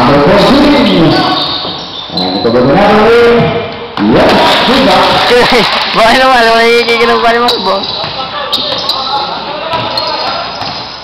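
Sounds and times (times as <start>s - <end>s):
voices in background: 4.7s - 10.8s
basketball bouncing on court: 7.2s - 11.0s.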